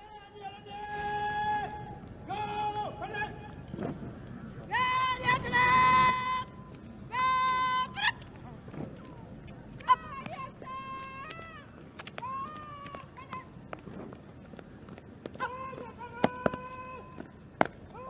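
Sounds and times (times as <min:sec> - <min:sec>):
long high vocal calls: 0:00.0 - 0:13.6.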